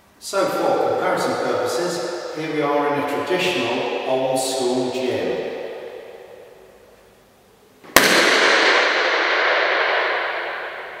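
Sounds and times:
balloon pop with reverberation: 7.9s - 11.0s.

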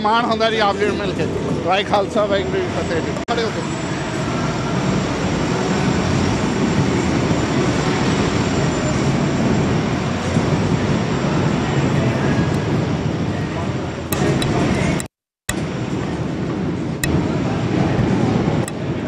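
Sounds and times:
truck engines rumbling: 0.0s - 19.0s.

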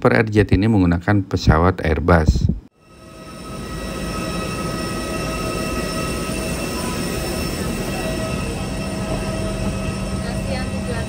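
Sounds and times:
lower hum: 2.4s - 11.0s
mechanical whine: 2.8s - 11.0s.

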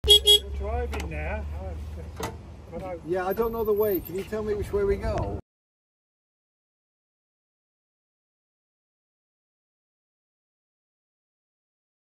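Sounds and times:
locomotive horn toots: 0.0s - 0.5s
voices: 0.1s - 5.4s.

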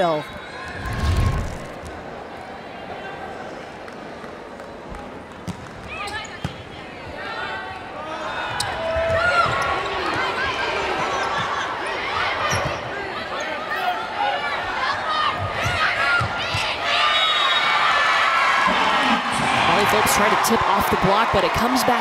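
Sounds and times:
arena crowd noise: 0.0s - 22.0s.

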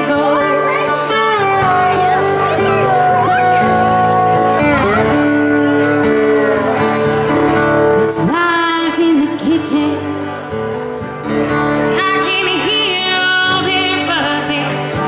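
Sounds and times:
woman singing: 0.0s - 6.4s, 8.0s - 10.4s, 11.8s - 15.0s
acoustic guitar: 0.0s - 15.0s.

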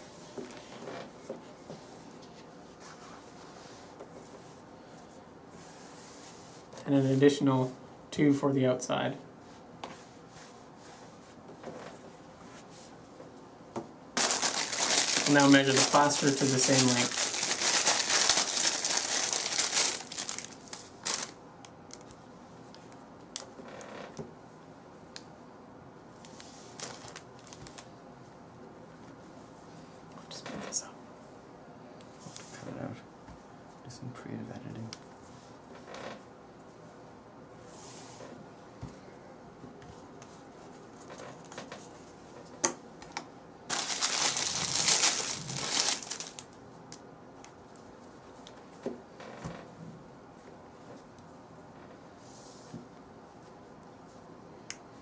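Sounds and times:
wrapper crinkling: 14.2s - 22.1s, 26.7s - 27.9s, 43.7s - 46.6s.

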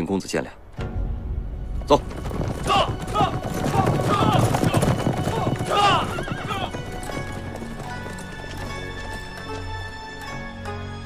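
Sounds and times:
hoofbeats on dirt road: 1.7s - 10.5s
horse whinnying: 2.3s - 9.8s
background music with held notes: 3.0s - 11.0s.

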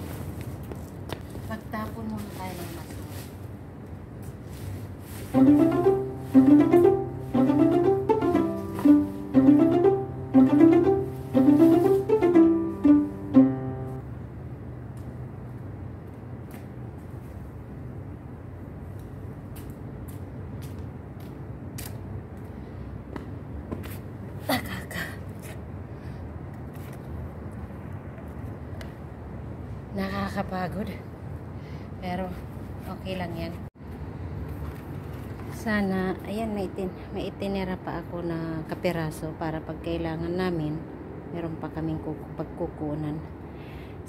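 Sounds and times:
low steady ambient hiss: 1.4s - 18.8s
plucked strings music: 5.4s - 14.1s.

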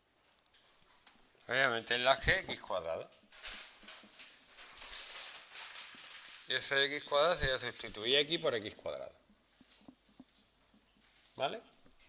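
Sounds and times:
marker pen writing on whiteboard: 8.8s - 12.0s.

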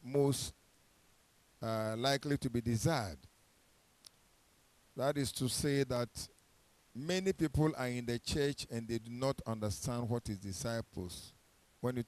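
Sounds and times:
faint click: 4.0s - 4.2s.

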